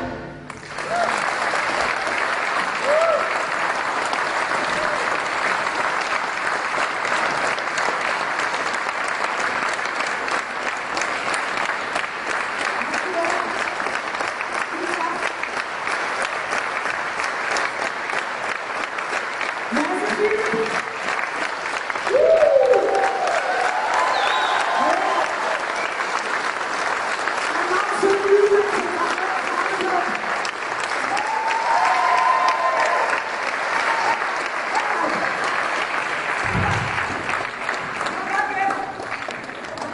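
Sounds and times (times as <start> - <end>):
audience applauding: 0.0 - 39.9.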